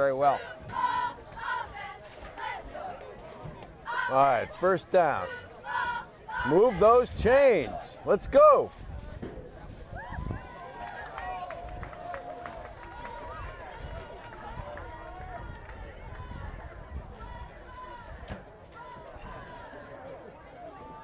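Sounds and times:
people calling and shouting: 0.0 - 21.0.

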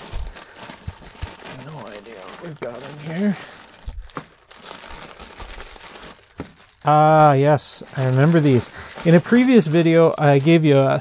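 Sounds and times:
plastic mailer bag crinkling: 0.0 - 11.0.

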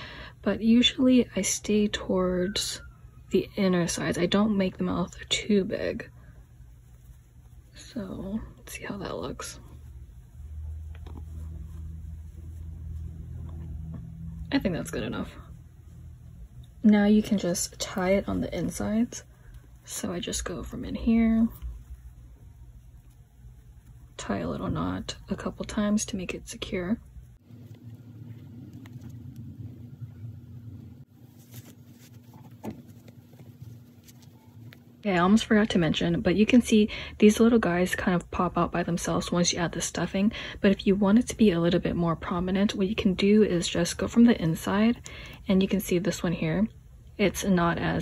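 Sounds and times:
low background hum: 0.0 - 48.0
low steady rumble: 0.0 - 48.0.

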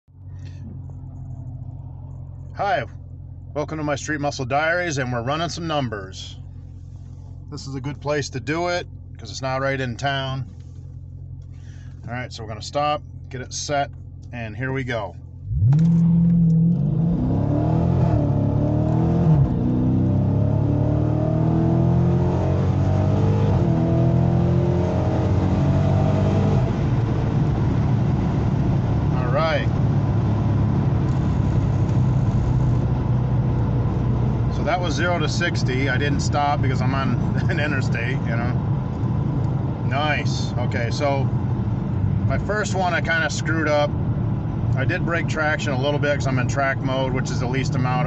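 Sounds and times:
car engine idling: 0.1 - 19.2, 22.6 - 48.0.

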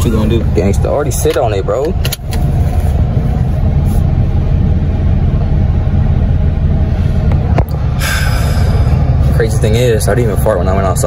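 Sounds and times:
car engine and road noise: 0.0 - 11.0.

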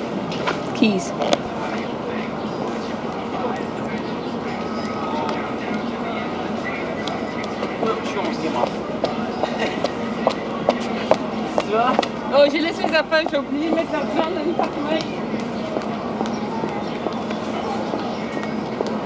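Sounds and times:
indistinct voices: 0.0 - 19.0
outdoor background noise: 0.0 - 19.0.

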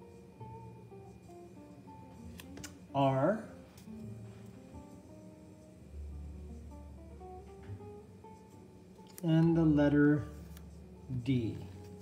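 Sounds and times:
soft acoustic guitar music: 0.0 - 12.0.

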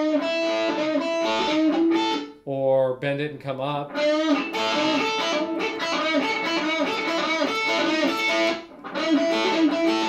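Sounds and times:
electric guitar lead: 0.0 - 2.4, 3.8 - 10.0.

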